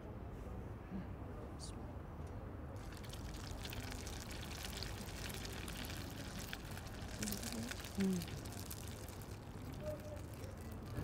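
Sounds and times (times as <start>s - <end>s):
cutlet sizzling in hot oil: 2.8s - 9.8s.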